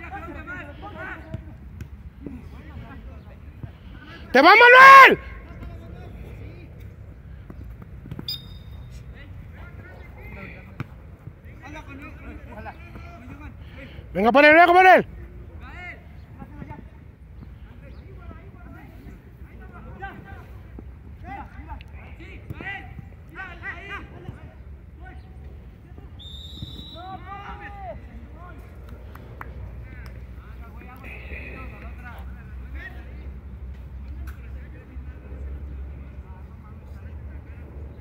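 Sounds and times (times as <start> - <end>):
distant players shouting: 4.0 - 6.7, 11.5 - 16.8, 21.2 - 28.7.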